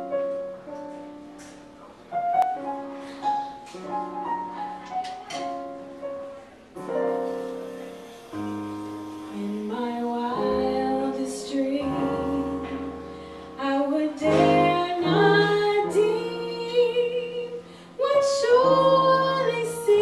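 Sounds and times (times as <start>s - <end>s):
piano: 0.0s - 20.0s
woman singing jazz: 9.2s - 20.0s.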